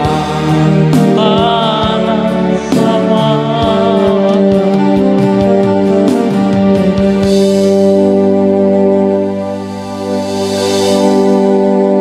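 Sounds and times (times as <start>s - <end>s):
electronic keyboard playing: 0.0s - 12.0s.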